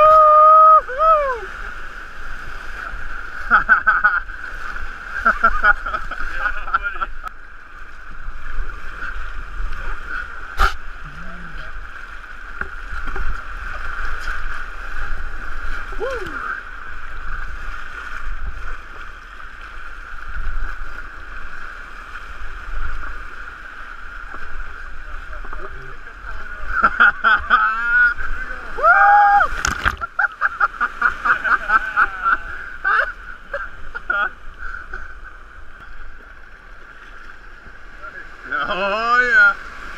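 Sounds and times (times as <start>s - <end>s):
person shouting: 0.0s - 1.5s, 15.9s - 16.6s, 28.8s - 29.5s
whitewater rapids rushing: 0.0s - 36.1s
paddle splashes: 0.0s - 39.9s.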